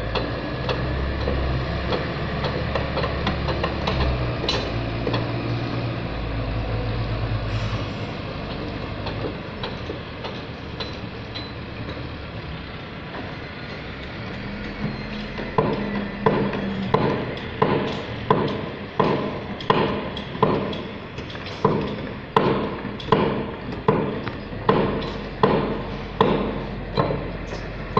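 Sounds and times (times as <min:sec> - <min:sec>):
diesel engine working: 0:00.0 - 0:27.9
sharp knocks: 0:15.4 - 0:27.7.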